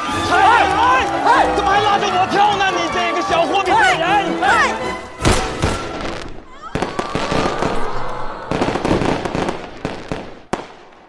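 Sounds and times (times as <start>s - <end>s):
sharp bangs and crackling: 5.1s - 7.9s, 8.5s - 11.0s
loud bang: 5.2s - 6.4s.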